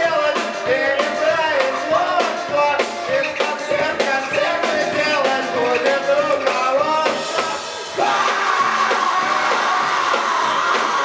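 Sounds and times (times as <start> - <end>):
rock band playing live: 0.0 - 11.0.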